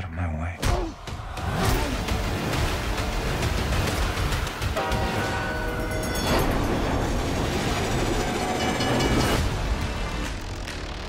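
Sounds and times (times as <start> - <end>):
train rumbling at speed: 2.4 - 10.2.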